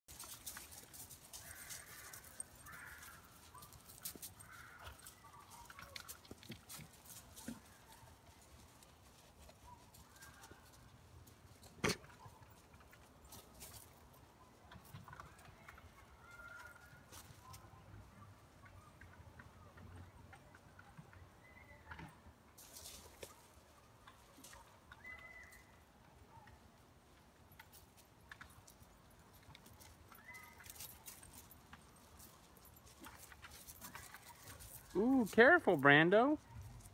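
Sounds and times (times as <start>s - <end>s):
dogs' paws on gravel: 0.1s - 19.6s, 22.6s - 25.8s, 26.4s - 36.9s.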